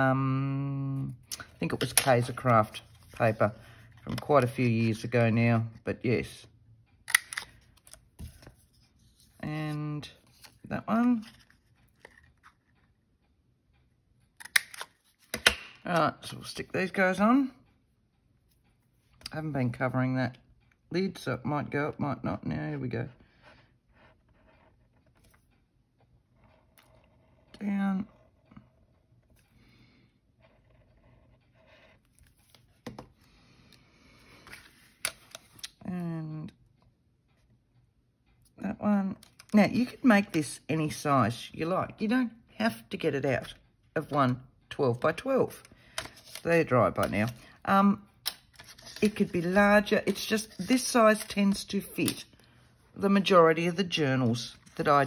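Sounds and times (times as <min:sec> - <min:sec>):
paper rustling: 0:45.9 - 0:47.5.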